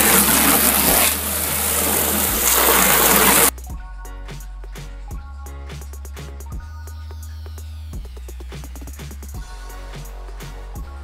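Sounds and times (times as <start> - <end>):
running water rushing and splashing: 0.0 - 3.5
background music with a beat: 3.5 - 11.0.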